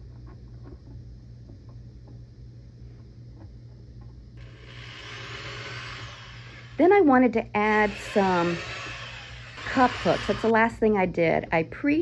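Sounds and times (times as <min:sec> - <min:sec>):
power drill whirring into wood: 0:04.4 - 0:06.8, 0:07.6 - 0:10.6.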